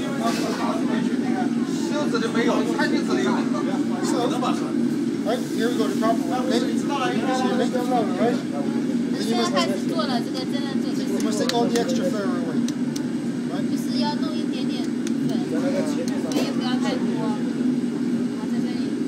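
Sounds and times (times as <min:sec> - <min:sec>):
low mechanical drone: 0:00.0 - 0:19.0
people talking: 0:00.0 - 0:19.0.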